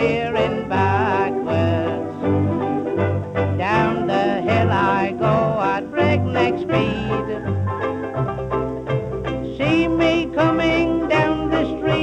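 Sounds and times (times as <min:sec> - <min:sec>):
lively band music: 0:00.0 - 0:12.0.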